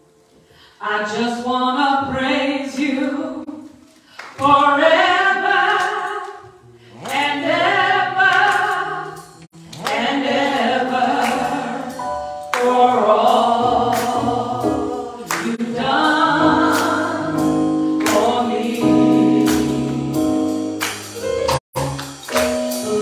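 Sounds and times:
woman singing gospel song: 0.8 - 6.4, 7.0 - 20.0
sharp percussive hits: 19.5 - 23.0.

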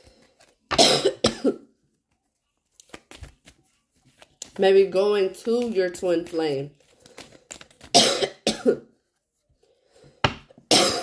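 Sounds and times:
person coughing: 0.7 - 1.7, 7.9 - 8.9, 10.7 - 11.0.

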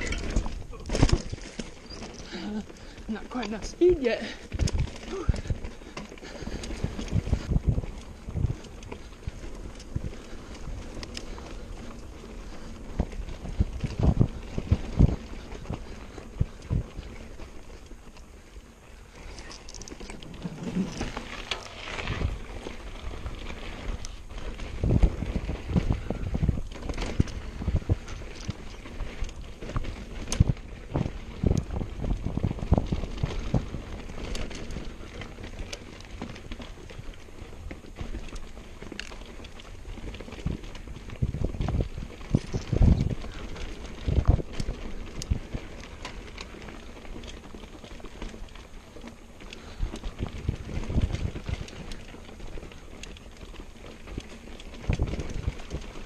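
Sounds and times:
bike knocking and rattling: 0.0 - 56.0
bike tyres rolling on dirt: 0.0 - 56.0
wind on microphone: 6.3 - 17.5, 19.0 - 35.6, 40.1 - 45.8, 49.6 - 52.2, 54.8 - 56.0.

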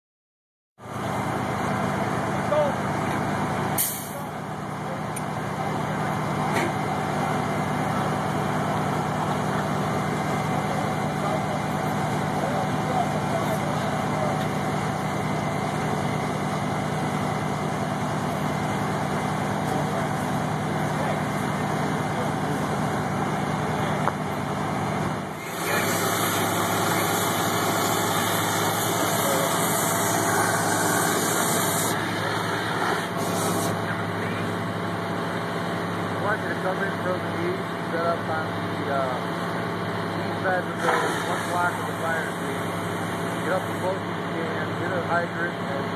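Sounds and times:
diesel engine droning: 0.8 - 45.9.

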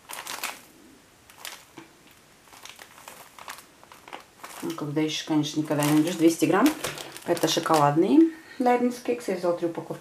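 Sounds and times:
plastic packaging crinkling: 0.0 - 8.3.

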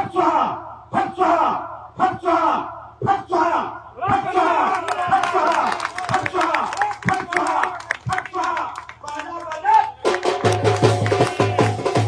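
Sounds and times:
crowd chanting: 0.0 - 8.7.

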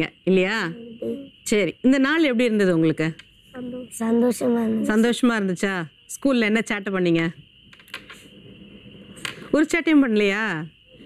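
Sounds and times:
thin high whine: 0.0 - 11.0
person speaking: 0.6 - 1.4.

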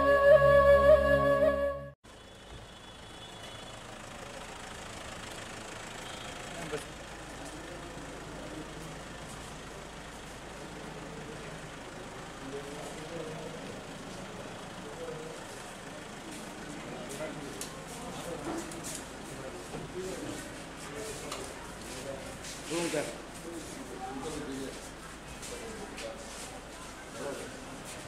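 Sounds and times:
vehicle engine running: 2.1 - 28.0.

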